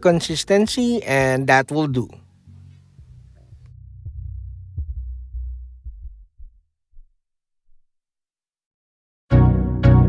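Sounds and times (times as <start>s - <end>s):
low hum: 2.2s - 6.6s
low dull thumps: 2.4s - 7.8s.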